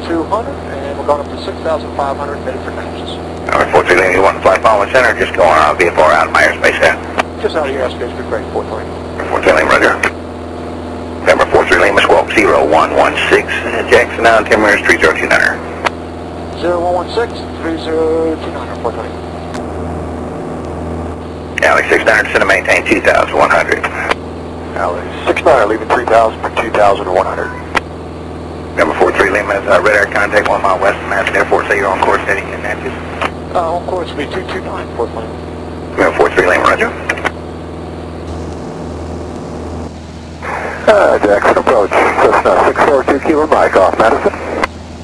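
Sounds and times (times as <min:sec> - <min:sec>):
airplane engine and propeller drone: 0:00.0 - 0:45.0.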